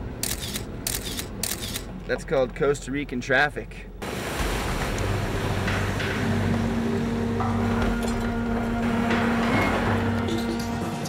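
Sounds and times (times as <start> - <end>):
engine running: 4.0 - 11.0
water splashing: 4.0 - 11.0.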